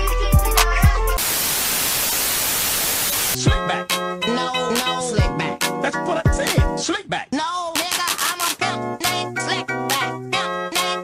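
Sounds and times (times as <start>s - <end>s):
tv static hiss: 1.2s - 3.4s.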